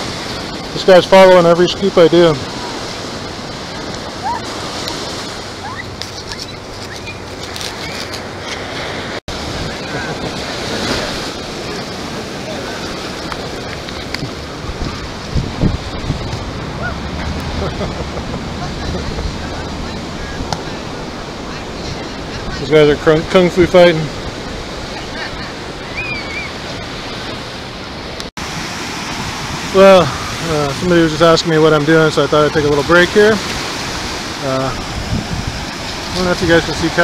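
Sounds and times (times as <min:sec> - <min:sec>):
ocean surf washing on beach: 0:00.0 - 0:37.0.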